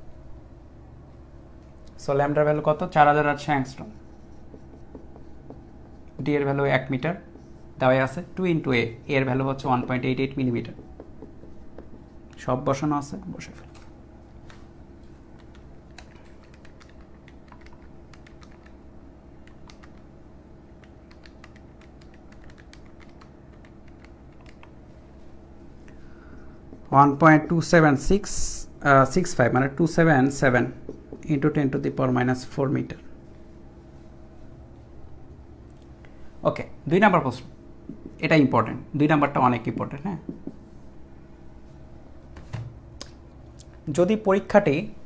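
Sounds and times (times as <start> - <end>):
steady low hum: 0.0 - 45.0
marker writing on whiteboard: 3.3 - 6.8, 10.0 - 12.5, 26.4 - 28.2, 30.1 - 32.0, 37.9 - 38.3, 40.2 - 40.8
calculator buttons clicking: 15.4 - 18.8, 20.8 - 24.8.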